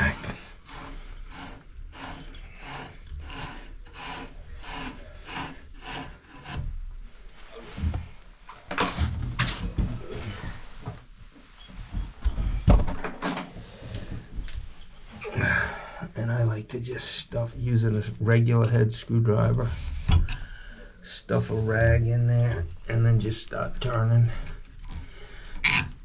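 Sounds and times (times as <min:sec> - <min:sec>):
wire brush scrubbing metal: 0:00.0 - 0:06.7
knocks and scrapes: 0:00.0 - 0:15.6.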